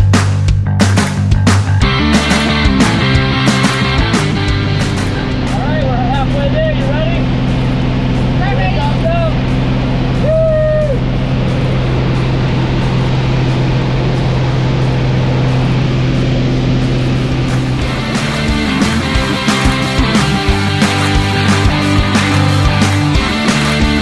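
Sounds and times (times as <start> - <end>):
small plane engine drone: 1.8 - 24.0.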